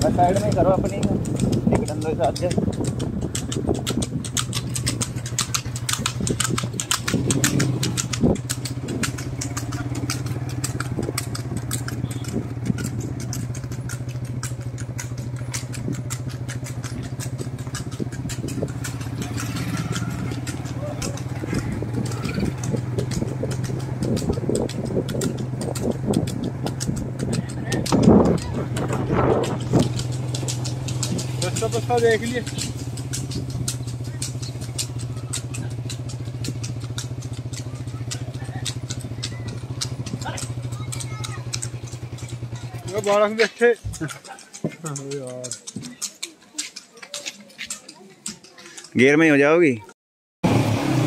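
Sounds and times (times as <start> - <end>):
motorcycle engine running: 0.0 - 47.1.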